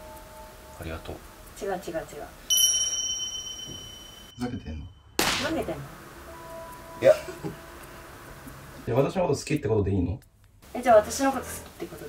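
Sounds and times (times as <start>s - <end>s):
bell-like ding: 2.5s - 5.2s.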